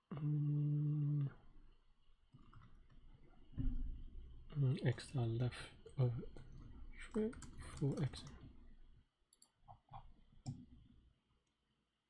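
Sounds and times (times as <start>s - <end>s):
keyboard and mouse clicks: 6.4s - 8.4s, 9.3s - 10.7s.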